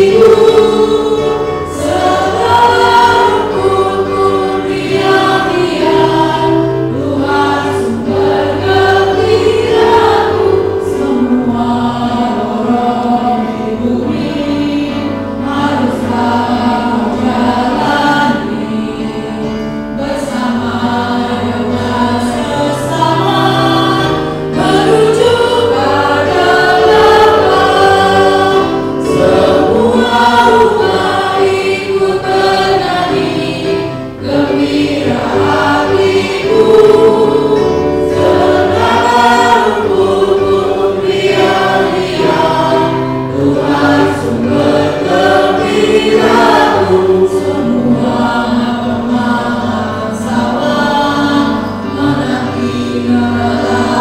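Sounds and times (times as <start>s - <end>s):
group singing a hymn: 0.0s - 54.0s.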